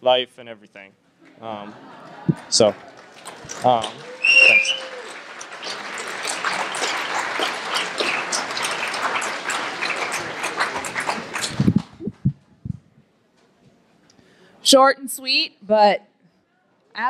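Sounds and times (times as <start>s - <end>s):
audience applauding: 1.8s - 12.2s
low thumps: 11.5s - 13.0s.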